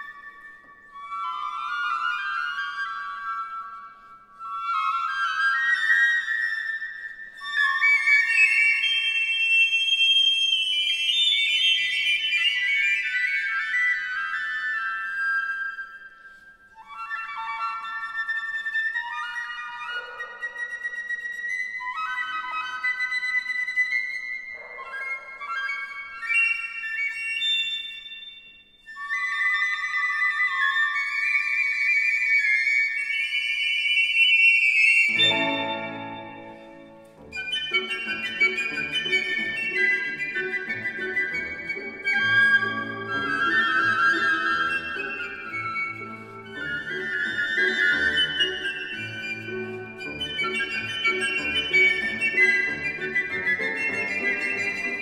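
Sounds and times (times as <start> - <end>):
piccolo duet: 34.6 - 55.0
piano accompaniment: 35.1 - 41.0.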